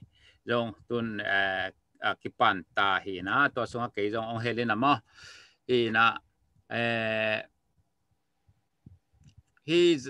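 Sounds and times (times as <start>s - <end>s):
man's drawn-out hesitation sound: 5.7s - 7.5s.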